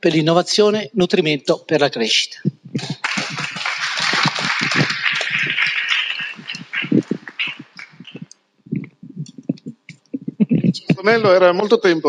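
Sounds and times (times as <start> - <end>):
audience applauding: 2.8 - 8.4.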